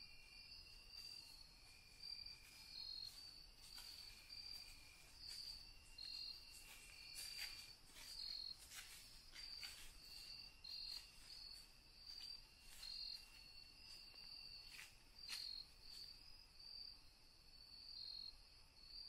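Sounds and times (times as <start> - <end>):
insects chirping: 0.0 - 19.0
steady insect trill: 0.0 - 19.0.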